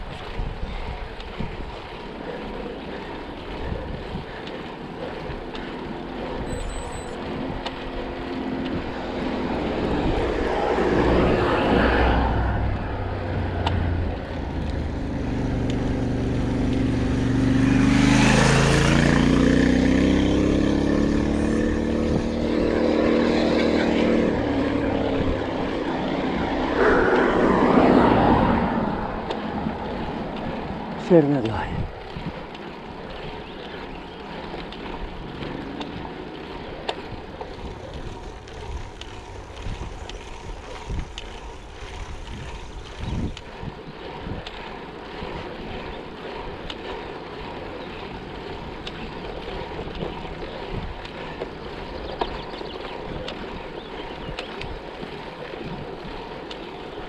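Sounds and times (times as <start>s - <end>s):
wind on microphone: 0.0s - 5.5s, 6.2s - 34.0s, 36.9s - 46.7s, 48.5s - 56.9s
vehicles passing on road: 0.0s - 57.0s.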